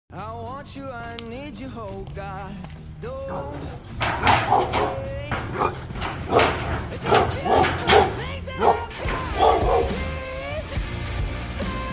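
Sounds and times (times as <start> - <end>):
pop music: 0.1 - 11.9
dog barking: 4.2 - 10.1.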